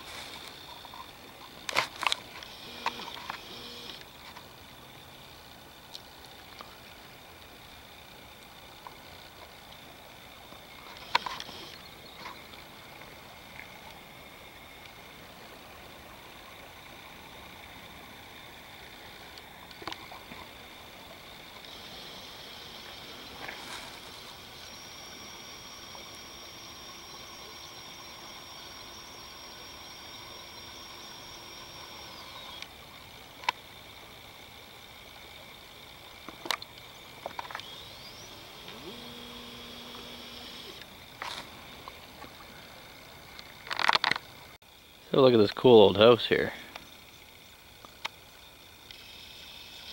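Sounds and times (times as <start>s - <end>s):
faint steady hiss: 0.0s - 49.9s.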